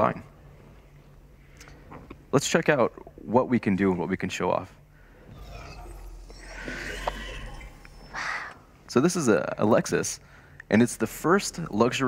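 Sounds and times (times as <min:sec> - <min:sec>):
low steady hum: 0:00.0 - 0:12.0
synthetic materialize effect: 0:05.3 - 0:08.7.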